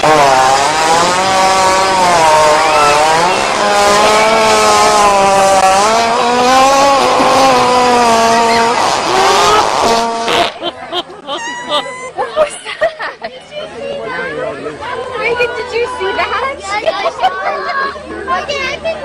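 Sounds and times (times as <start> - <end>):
long buzzing fart: 0.0 - 11.1.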